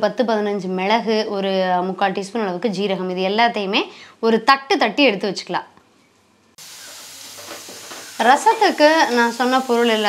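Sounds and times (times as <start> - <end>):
food sizzling in a pan: 6.6 - 10.0.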